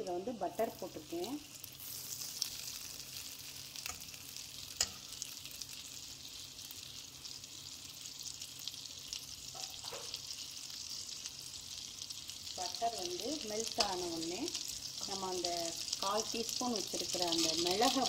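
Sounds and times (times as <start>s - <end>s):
butter sizzling in a pan: 0.0s - 18.0s.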